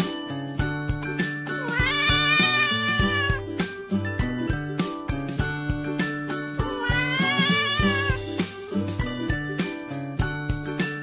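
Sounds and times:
background music with beat: 0.0 - 11.0
cat meowing: 1.6 - 3.4, 6.7 - 8.2.

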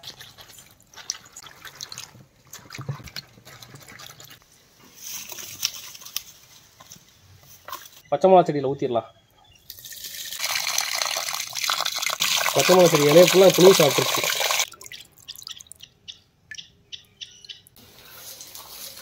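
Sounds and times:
water trickling and dripping: 9.7 - 16.7
water splashing onto plant: 9.8 - 14.8.

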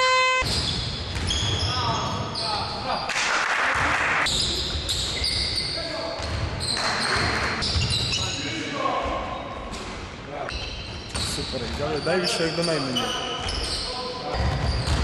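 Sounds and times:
sneakers squeaking: 0.0 - 2.9, 4.2 - 15.0
ball bouncing on court: 0.4 - 2.2, 6.2 - 8.2, 14.3 - 15.0
players' voices: 1.6 - 14.8.

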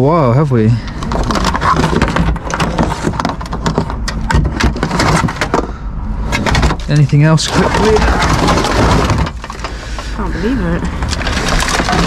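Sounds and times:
hands rummaging through cables: 0.8 - 5.7, 6.3 - 12.0.

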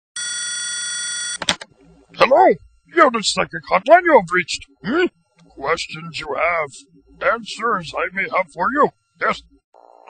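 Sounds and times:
telephone ringing: 0.2 - 1.5.

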